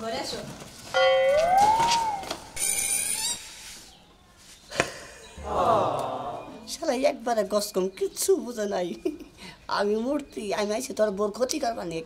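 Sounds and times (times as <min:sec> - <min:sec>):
gliding whistle tone: 0:01.4 - 0:02.9.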